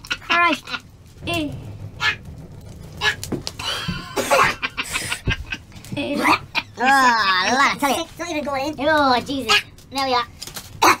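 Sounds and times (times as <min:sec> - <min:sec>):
men laughing: 0:03.6 - 0:07.5.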